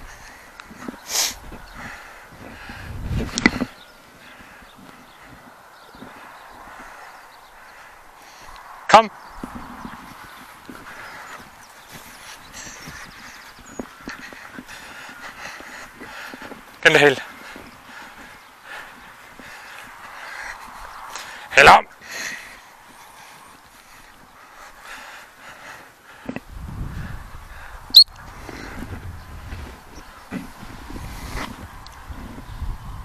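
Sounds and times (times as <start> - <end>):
rustling bursts of wind: 0.0 - 33.0.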